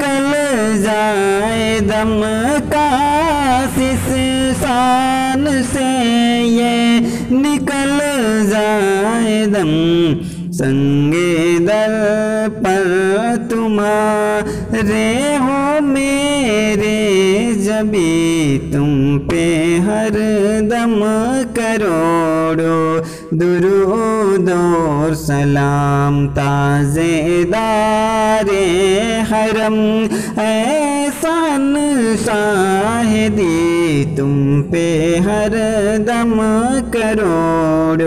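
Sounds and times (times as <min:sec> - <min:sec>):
man chanting melodically: 0:00.0 - 0:38.0
steady low drone: 0:00.0 - 0:38.0.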